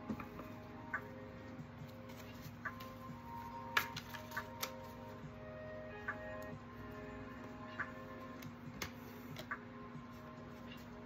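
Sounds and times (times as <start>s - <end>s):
soft background music: 0.0s - 11.0s
cards clicking and tapping: 3.6s - 5.0s, 8.3s - 9.6s.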